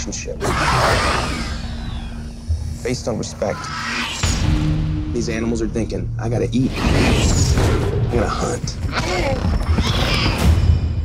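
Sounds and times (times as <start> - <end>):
low steady drone: 0.0 - 6.7
creature shrieking roar: 0.4 - 1.6.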